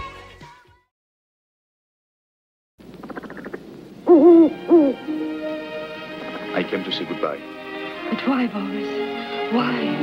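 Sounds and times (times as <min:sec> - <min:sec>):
loud hoots: 0:03.0 - 0:05.5.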